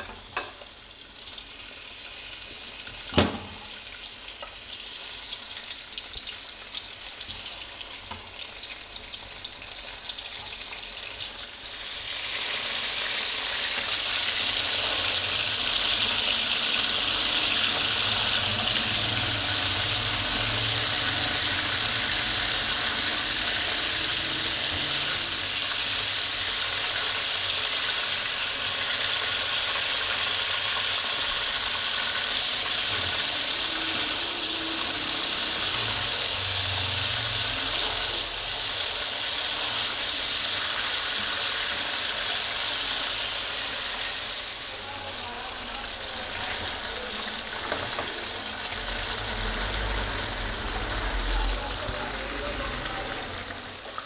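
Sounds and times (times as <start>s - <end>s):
chicken sizzling in hot oil: 0.0s - 54.0s.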